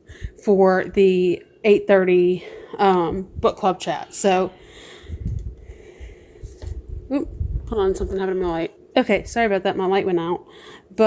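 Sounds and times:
soft low bumps and rumbling: 2.9 - 3.6, 5.0 - 9.5.

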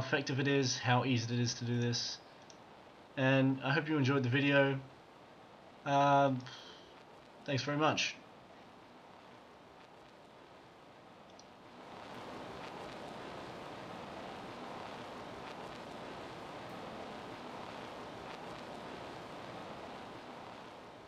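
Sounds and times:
steady background hiss: 0.0 - 21.0
faint clicks: 2.4 - 2.6, 11.3 - 11.5.

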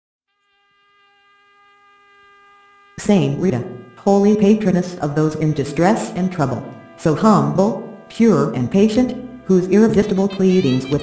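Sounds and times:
buzzing drone tone: 0.3 - 11.0.

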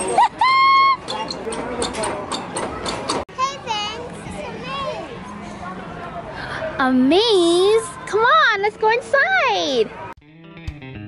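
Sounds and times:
child squealing: 0.1 - 1.2.

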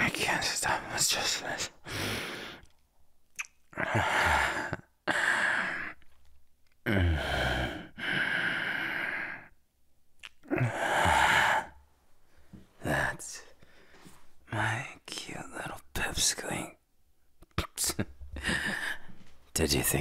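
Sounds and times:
man breathing heavily and sighing: 1.8 - 2.8, 3.7 - 6.2, 6.8 - 9.5, 10.4 - 11.8, 18.2 - 19.4.

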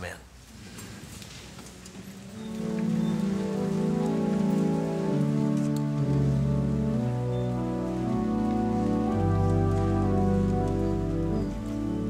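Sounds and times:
pipe organ chords: 2.3 - 12.0.

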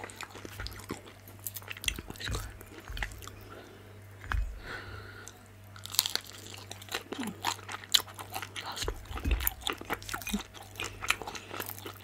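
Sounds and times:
chewing and crunching dumplings: 0.0 - 12.0.

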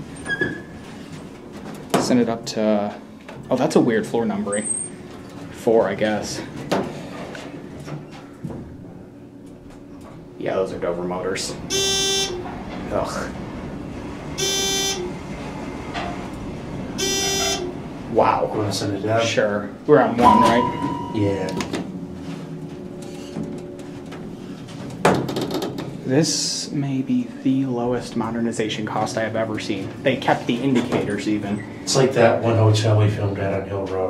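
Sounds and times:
elevator machinery humming: 0.0 - 33.8
door motor hum: 4.2 - 19.2.

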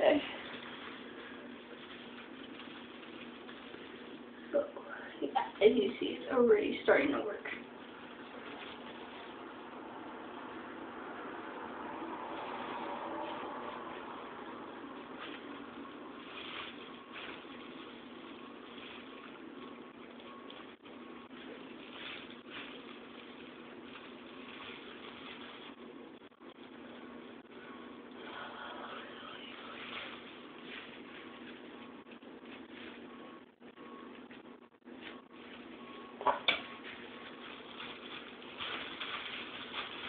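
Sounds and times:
plastic gloves rustling: 0.0 - 40.0
room noise hiss: 0.0 - 40.0.

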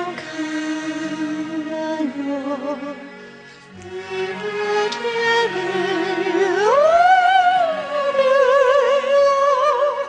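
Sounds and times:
woman singing into a microphone: 0.0 - 3.1, 3.8 - 10.0.

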